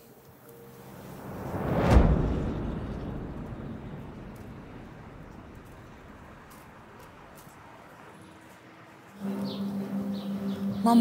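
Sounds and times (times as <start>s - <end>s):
whoosh into deep boom: 1.0s - 6.5s.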